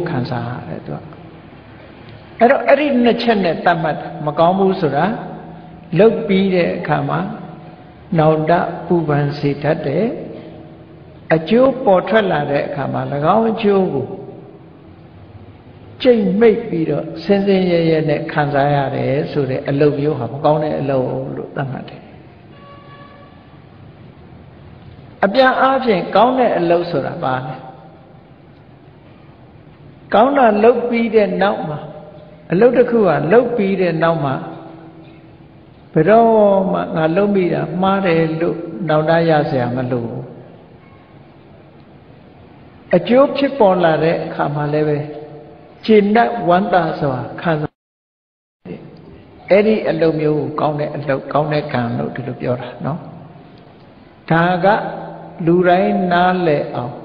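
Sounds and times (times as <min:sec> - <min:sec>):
man speaking: 0:00.0 - 0:01.2, 0:02.4 - 0:10.7, 0:11.3 - 0:14.6, 0:16.0 - 0:22.2, 0:25.2 - 0:28.2, 0:30.1 - 0:35.0, 0:35.9 - 0:40.4, 0:42.9 - 0:47.7, 0:48.7 - 0:53.4, 0:54.2 - 0:57.0
background hiss: 0:00.0 - 0:47.7, 0:48.7 - 0:57.0.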